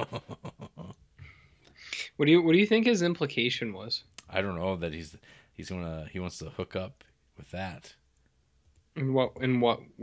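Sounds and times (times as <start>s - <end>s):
person laughing: 0.0s - 1.0s.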